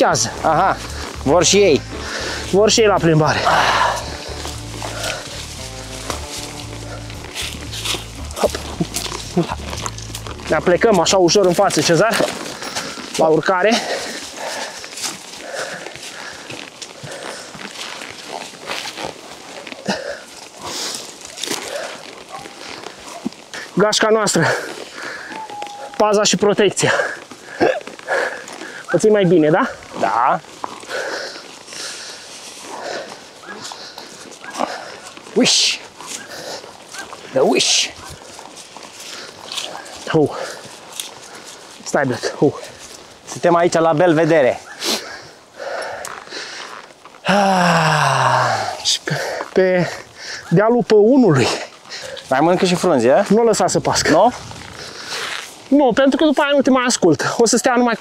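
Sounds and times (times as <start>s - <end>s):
background music with bass line: 0.0s - 11.3s
dogs rustling through dry leaves: 0.0s - 45.5s
short animal calls: 25.1s - 26.0s
dog whining: 25.2s - 26.0s.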